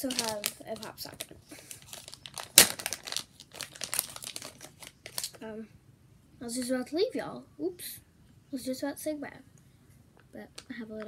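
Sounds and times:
plastic pouch crinkling: 0.0 - 5.4.

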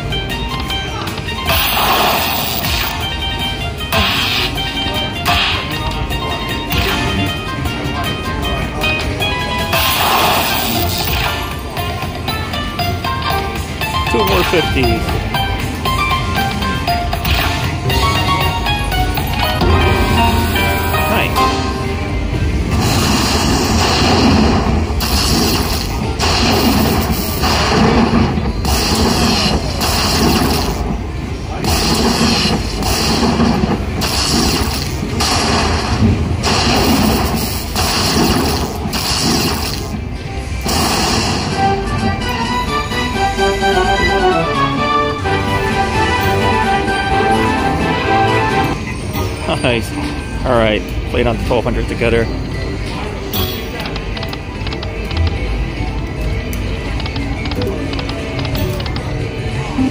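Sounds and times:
slot machine win music: 0.0 - 59.9
heavy hits: 17.1 - 42.4
stepping chime notes: 17.9 - 22.5.

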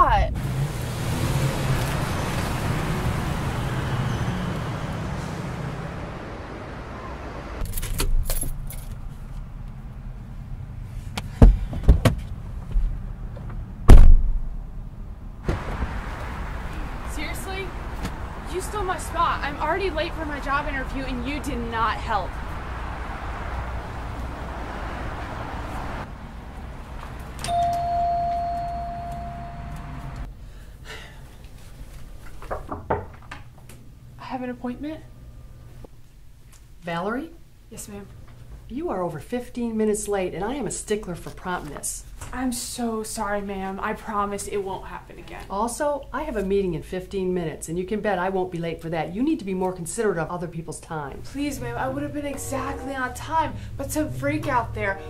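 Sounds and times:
car engine and tyres: 0.0 - 30.4, 51.2 - 55.0
electronic door chime tone: 27.4 - 30.2.

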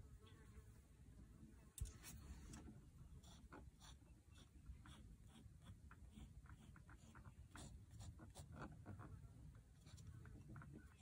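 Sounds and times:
low room hum: 0.0 - 11.0
pen scratching on paper: 3.1 - 9.0.

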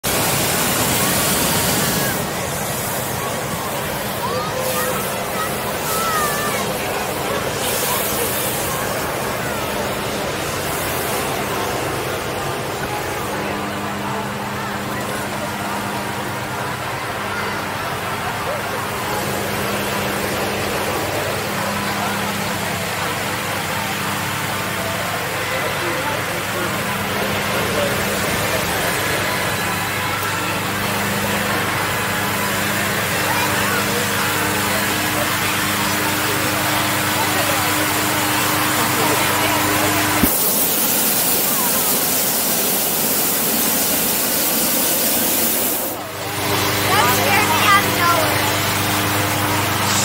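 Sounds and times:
crowd chatter: 0.0 - 50.0
steady rushing noise: 0.0 - 50.0.

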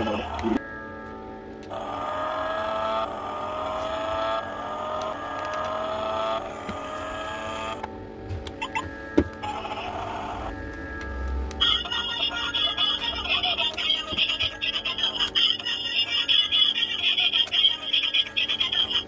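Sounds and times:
toy car simulated engine revving: 1.6 - 7.9, 9.4 - 19.0
handling clicks: 5.0 - 5.8.

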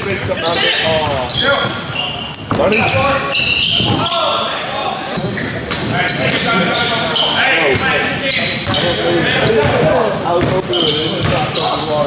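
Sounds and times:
sneakers squeaking on hardwood: 0.0 - 12.0
basketball bouncing: 8.6 - 11.5.

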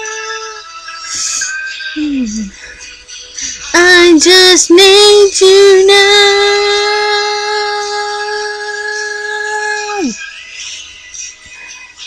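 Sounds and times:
karaoke backing track: 0.0 - 12.0
woman singing sustained note: 5.8 - 10.2.

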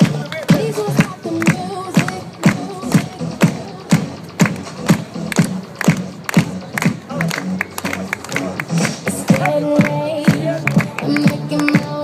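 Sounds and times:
dance music with steady beat: 0.0 - 12.0.

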